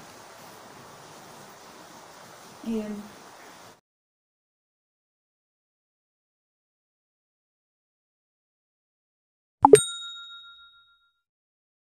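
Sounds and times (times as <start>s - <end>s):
bell-like ding: 9.6s - 11.2s.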